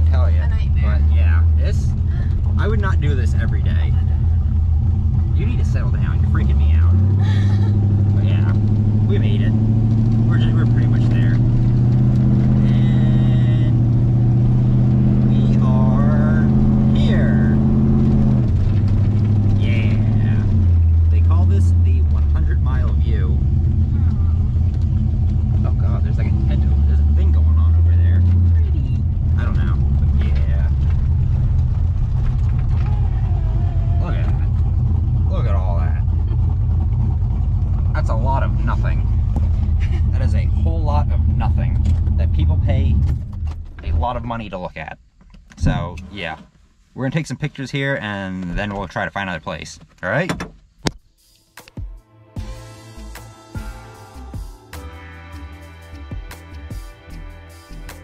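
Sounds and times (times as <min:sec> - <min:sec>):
car engine running inside cabin: 0:00.0 - 0:44.8
faint voices: 0:32.7 - 0:34.6.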